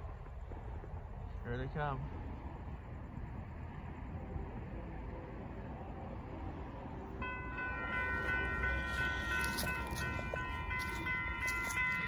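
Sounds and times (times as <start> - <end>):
level crossing warning bell: 5.8 - 12.0.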